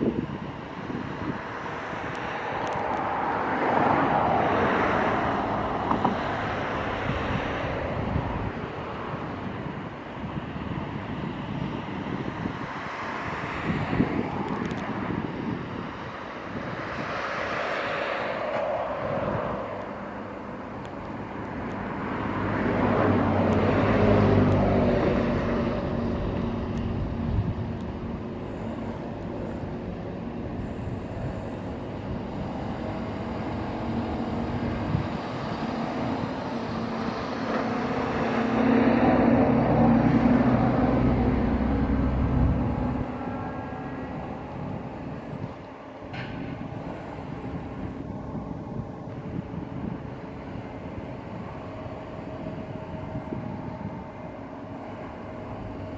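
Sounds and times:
heavy diesel engine running: 0:17.4 - 0:55.9.

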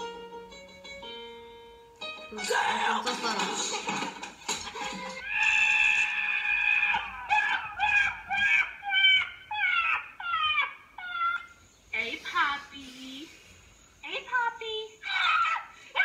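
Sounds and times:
goat screaming through speakers: 0:05.2 - 0:10.8.

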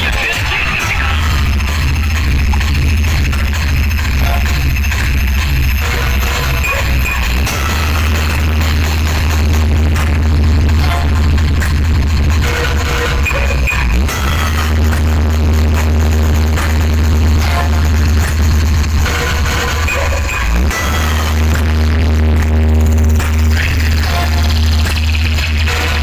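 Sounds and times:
loud electronic dance music: 0:00.0 - 0:26.0.

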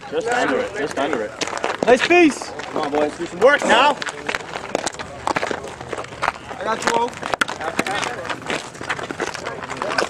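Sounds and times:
indistinct voices chattering: 0:00.0 - 0:10.0.

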